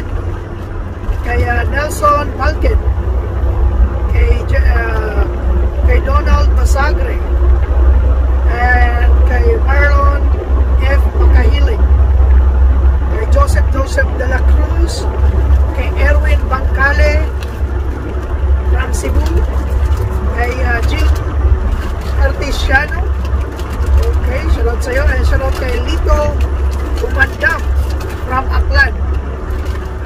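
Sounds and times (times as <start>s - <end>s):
truck engine rumble: 0.0s - 30.0s
man talking: 1.2s - 2.8s, 4.1s - 7.2s, 8.4s - 11.8s, 13.1s - 15.1s, 15.7s - 17.4s, 18.7s - 19.5s, 20.2s - 21.2s, 22.0s - 23.2s, 23.9s - 29.0s.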